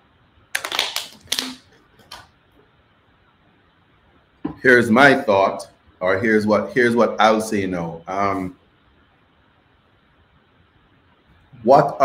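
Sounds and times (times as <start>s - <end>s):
plastic water bottle crinkling: 0.6s - 2.3s.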